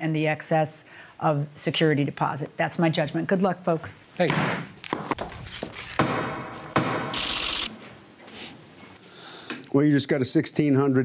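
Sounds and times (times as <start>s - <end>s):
gavel strikes: 6.0s - 7.2s.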